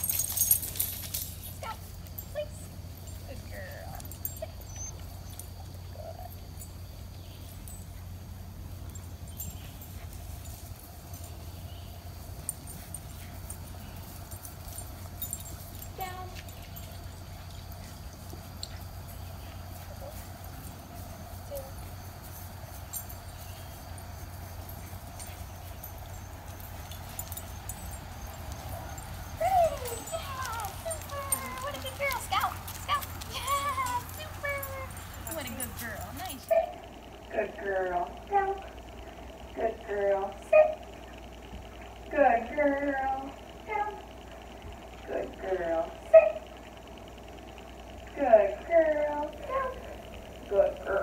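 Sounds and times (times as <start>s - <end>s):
dogs whining: 0.0s - 10.1s, 11.2s - 37.0s
faint hum: 0.0s - 51.0s.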